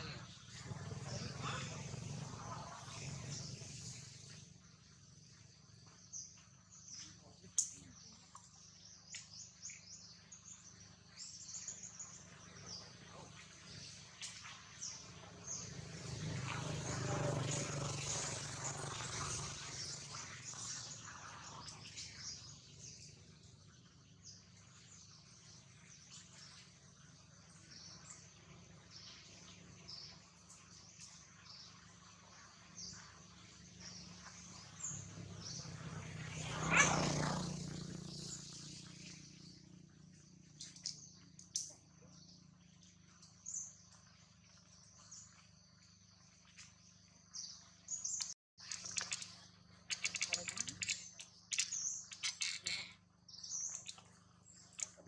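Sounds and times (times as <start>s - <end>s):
small birds chirping: 0.0s - 55.0s.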